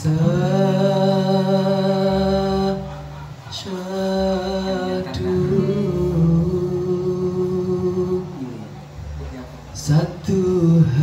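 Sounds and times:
man singing: 0:00.0 - 0:08.8, 0:09.7 - 0:11.0
acoustic guitar: 0:00.0 - 0:11.0.

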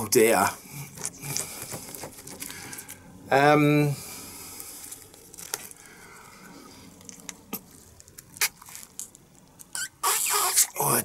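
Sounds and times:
balloon rubbery snaps and squeaks: 0:08.2 - 0:11.0.

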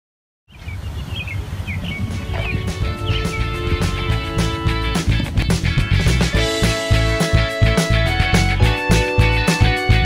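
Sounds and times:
birds chirping: 0:00.5 - 0:07.5
background music with held notes: 0:02.0 - 0:10.0.

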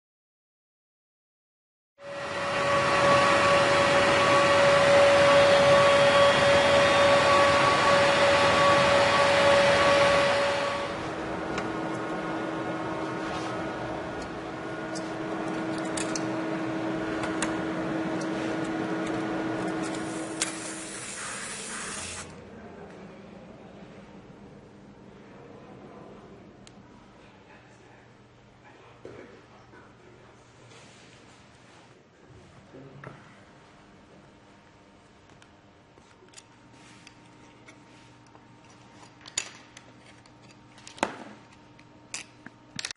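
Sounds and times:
milling machine spindle whine: 0:02.0 - 0:22.4.

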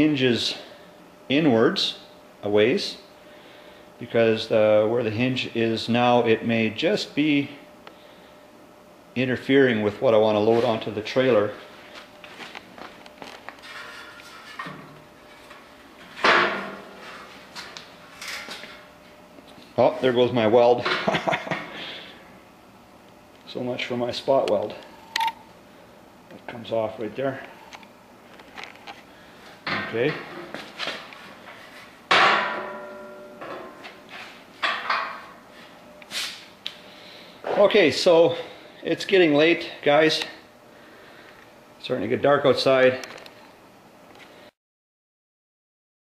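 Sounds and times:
sharp metal clank: 0:32.1 - 0:33.9.

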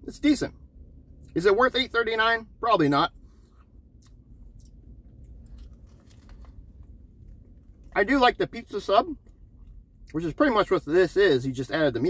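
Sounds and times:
low background rumble: 0:00.0 - 0:12.0
person chewing: 0:03.4 - 0:07.9.

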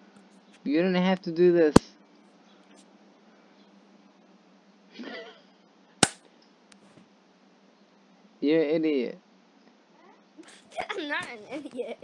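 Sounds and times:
low background hiss: 0:00.0 - 0:12.0
sharp click: 0:06.0 - 0:06.3.

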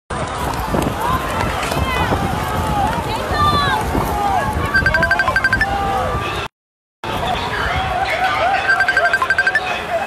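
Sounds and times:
crowd shouting: 0:05.5 - 0:06.5.

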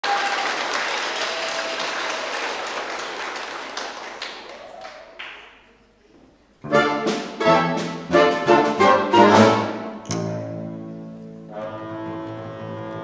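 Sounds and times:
audience applauding: 0:00.0 - 0:05.9.

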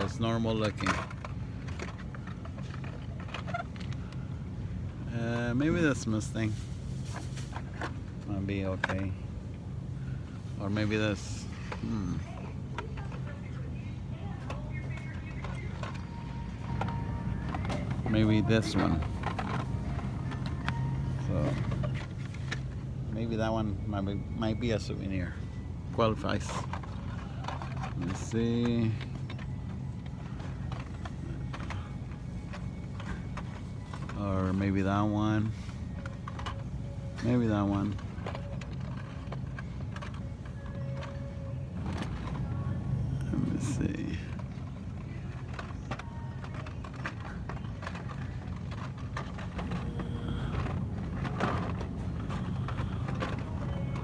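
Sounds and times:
plastic packs clicking and rattling: 0:00.0 - 0:04.3, 0:14.8 - 0:54.0
steady low hum: 0:00.0 - 0:54.0.

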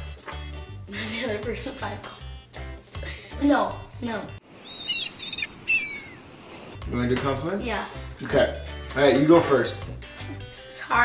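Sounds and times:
soft outdoor hiss: 0:00.9 - 0:09.2
birds chirping: 0:04.4 - 0:07.4.

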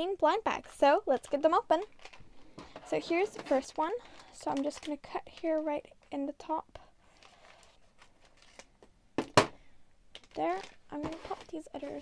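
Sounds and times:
plastic bag rustling: 0:01.1 - 0:05.7, 0:07.0 - 0:08.8, 0:10.2 - 0:12.0.

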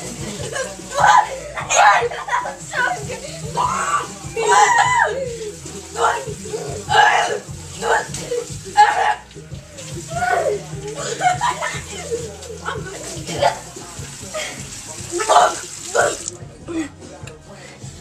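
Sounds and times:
people crying out and groaning: 0:00.0 - 0:17.8.

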